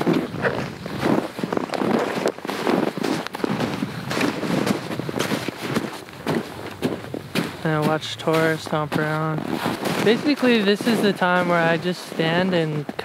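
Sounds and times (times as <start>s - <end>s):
boots crunching on packed snow: 0.0s - 13.0s.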